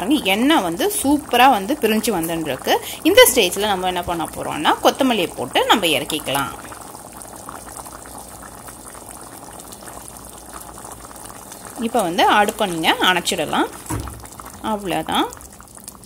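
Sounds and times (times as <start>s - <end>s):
people talking: 0.0s - 6.6s, 11.8s - 13.8s, 14.6s - 15.4s
soup bubbling at a boil: 0.0s - 16.0s.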